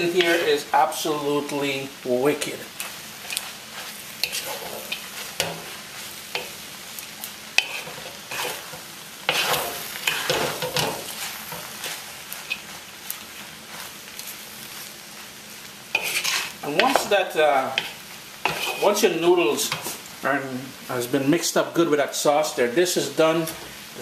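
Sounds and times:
spatula scraping and knocking pan: 0.0s - 0.6s, 3.2s - 6.6s, 7.5s - 12.7s, 15.9s - 20.0s
noodles sizzling in a wok: 0.0s - 24.0s.

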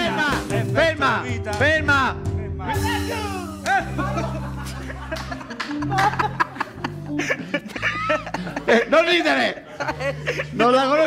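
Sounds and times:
people laughing: 3.4s - 11.0s.

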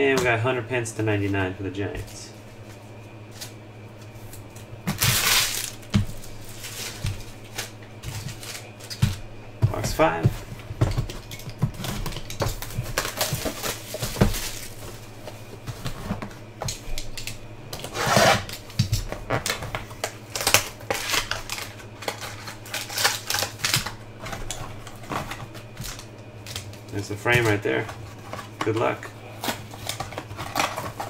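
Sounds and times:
cardboard and wrapper crackling: 3.2s - 31.0s.

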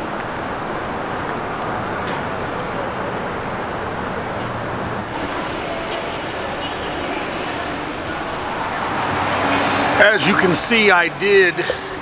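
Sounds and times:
cars passing on busy road: 0.0s - 12.0s.

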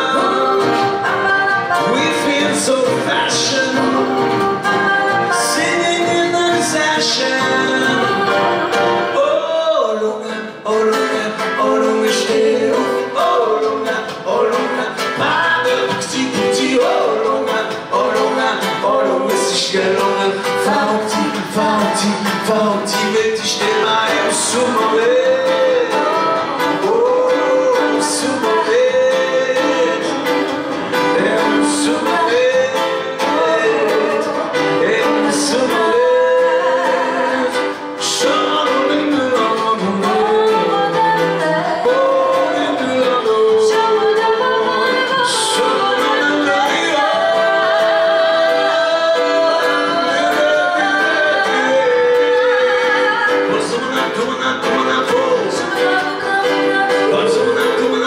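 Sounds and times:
people singing: 0.0s - 58.0s
piano: 0.0s - 58.0s
strummed acoustic guitar: 0.0s - 58.0s.

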